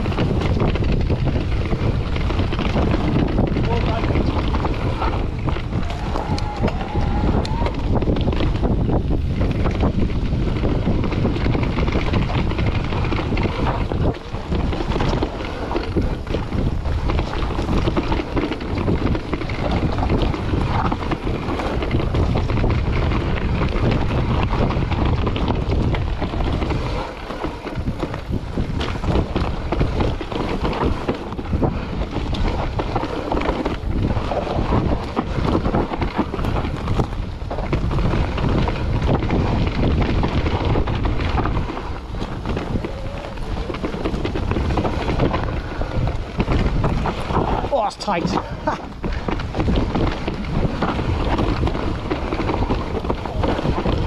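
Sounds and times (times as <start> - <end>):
bike rattling: 0.0 - 54.0
tyres rumbling over rough ground: 0.0 - 54.0
wind buffeting microphone: 0.0 - 54.0.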